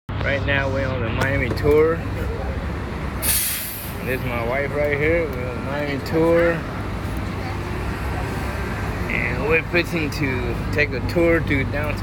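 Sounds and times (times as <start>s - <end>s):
bus engine rumble: 0.1s - 12.0s
road noise: 0.1s - 12.0s
bus air brakes hissing: 3.2s - 4.1s.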